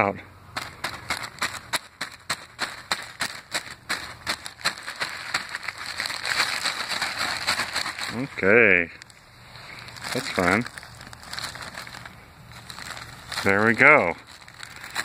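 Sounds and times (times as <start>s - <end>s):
plastic bag crinkling: 0.6s - 15.0s.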